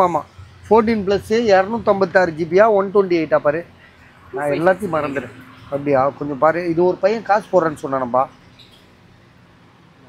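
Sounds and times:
man's voice: 0.0s - 3.7s, 4.4s - 8.3s
faint steady background noise: 0.0s - 10.0s.

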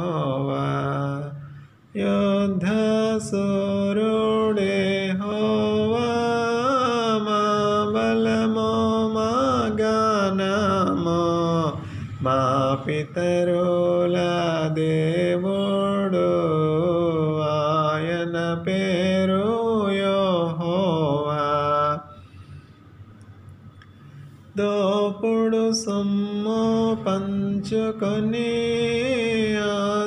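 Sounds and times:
man singing long held notes: 0.0s - 22.2s.

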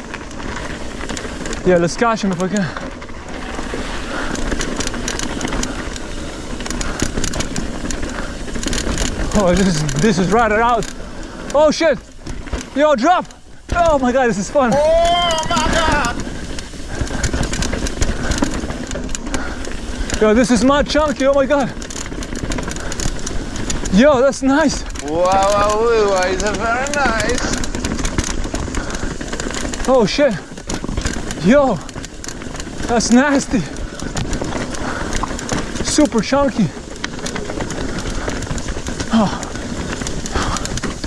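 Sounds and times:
bike tyres rumbling on rocky trail: 0.0s - 41.0s
chain and frame rattling: 0.0s - 41.0s.

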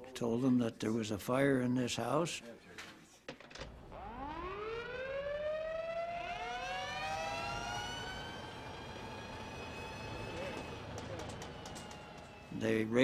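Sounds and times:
fire engine sirens wailing: 3.8s - 13.0s.

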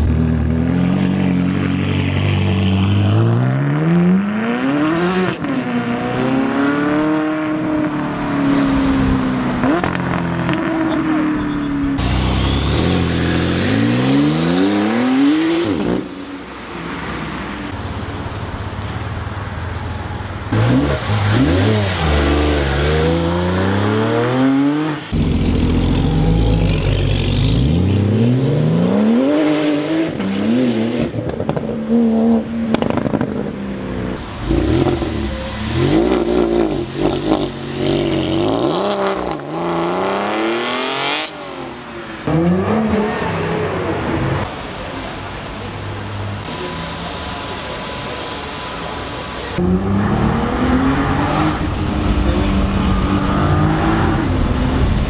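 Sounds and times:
sports cars accelerating hard: 49.4s - 55.0s.

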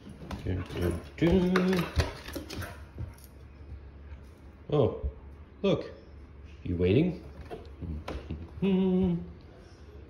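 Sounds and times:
wordless humming voice: 7.8s - 10.0s.

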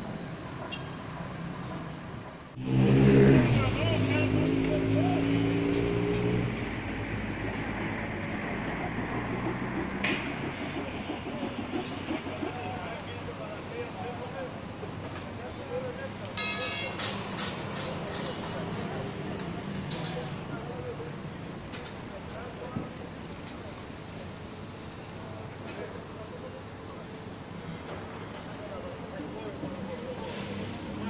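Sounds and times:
traffic hum: 0.0s - 31.0s
vehicle engine: 0.0s - 31.0s
faint distant voices: 10.8s - 31.0s.

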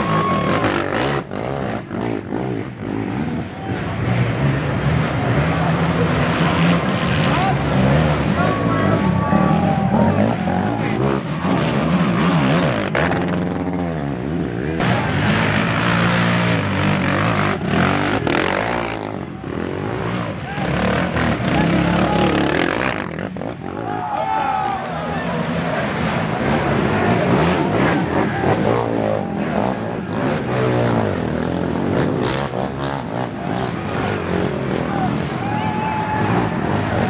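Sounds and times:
atv engines revving: 0.0s - 37.0s
spectators shouting and talking: 0.0s - 37.0s.

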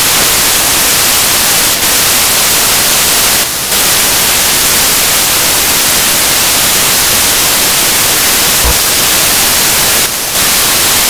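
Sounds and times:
static hiss: 0.0s - 11.0s.

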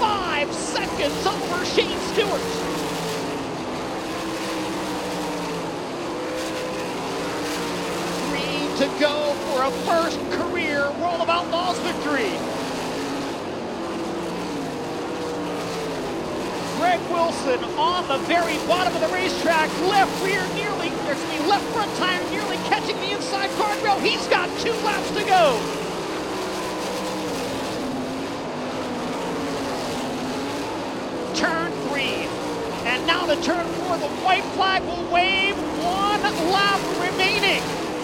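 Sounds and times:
racing car engines droning: 0.0s - 38.0s.

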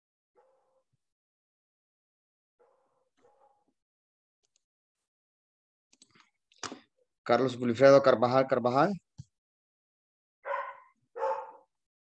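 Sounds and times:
dog barking over video call: 0.4s - 1.1s, 2.6s - 3.8s, 10.4s - 11.8s.

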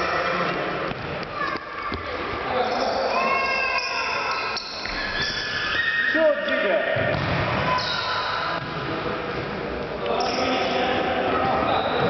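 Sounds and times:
ball kicked and bouncing on court: 7.0s - 7.7s.

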